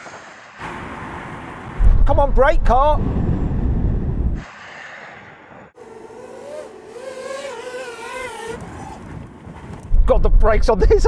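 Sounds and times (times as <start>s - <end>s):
tyre and road rumble braking: 0.0s - 10.8s
drone propellers whining: 0.3s - 9.9s.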